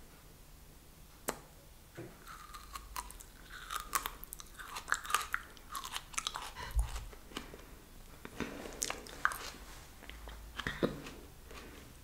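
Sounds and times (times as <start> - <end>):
chewing raw aloe leaf crunches: 2.2 - 7.5, 8.7 - 11.7.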